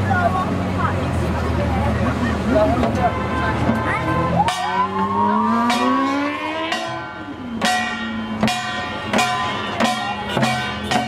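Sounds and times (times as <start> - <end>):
drum and gong strokes: 3.6 - 11.0
car engine accelerating: 4.0 - 7.6.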